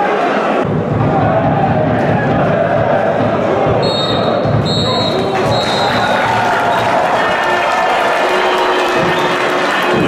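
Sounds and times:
crowd noise: 0.0 - 10.0
referee's whistle blasts: 3.8 - 6.1.

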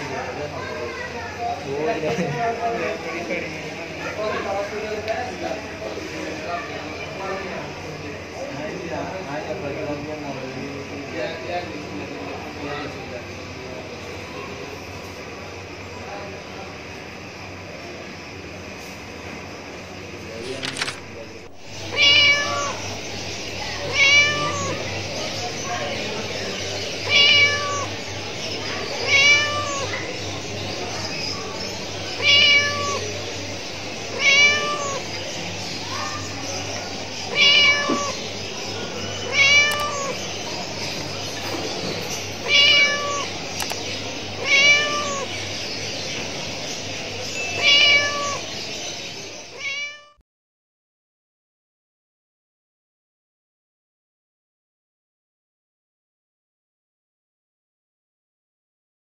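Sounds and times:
cat meowing: 21.6 - 22.8, 23.6 - 24.9, 27.0 - 28.1, 28.9 - 30.2, 32.1 - 33.2, 34.1 - 35.2, 37.3 - 38.3, 39.2 - 40.4, 42.4 - 43.7, 44.4 - 45.4, 47.4 - 48.5, 49.5 - 50.2.

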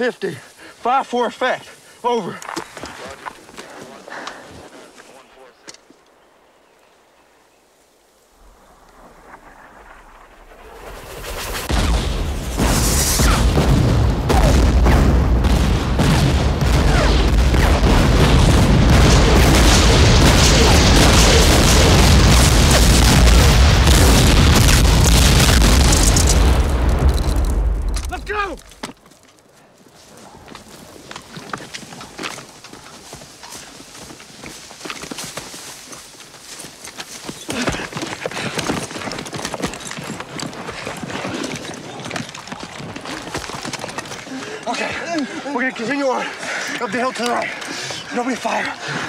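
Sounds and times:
shell explosions: 9.1 - 28.8.

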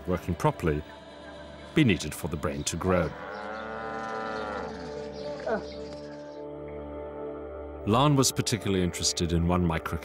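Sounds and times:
cow mooing: 3.0 - 5.7.

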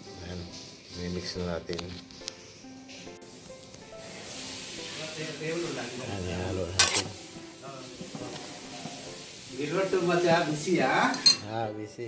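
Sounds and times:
background music: 0.0 - 12.0
spoon clinking on pot: 6.8 - 7.1, 11.0 - 11.5
metal spoon stirring food in pot: 6.8 - 9.3.

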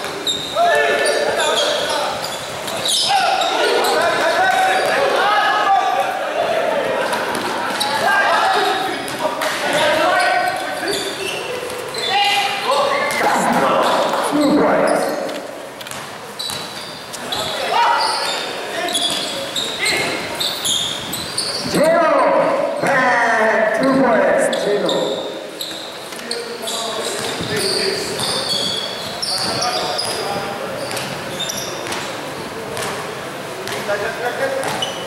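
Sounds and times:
people shouting in echoing gym: 0.0 - 15.3, 17.2 - 26.0
basketball bouncing on court: 15.2 - 17.4, 27.1 - 31.2, 31.8 - 33.9, 34.6 - 35.0.

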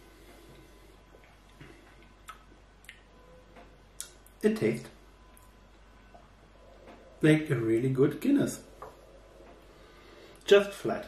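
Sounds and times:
lip and tongue smacks: 2.2 - 3.1.

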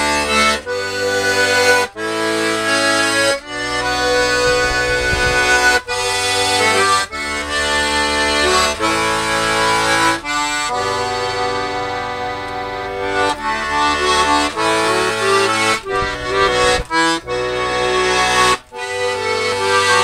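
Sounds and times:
button accordion playing tune: 0.0 - 20.0.

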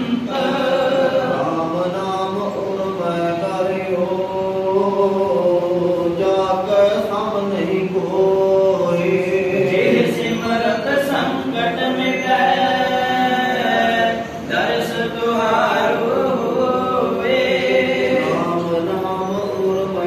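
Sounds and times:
men chanting a hymn: 0.0 - 20.0.

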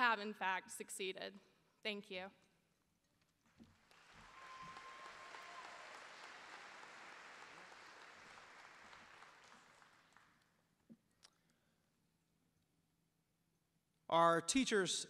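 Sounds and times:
faint distant applause: 3.8 - 10.4.

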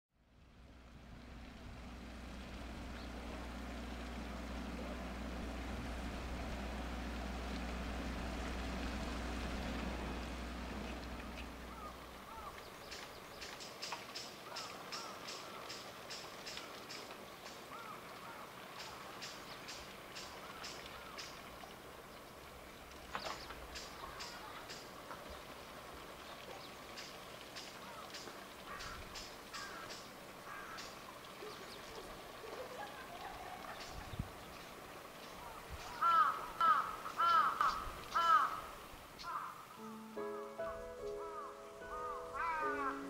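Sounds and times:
boat engine idling hum: 0.1 - 43.0.

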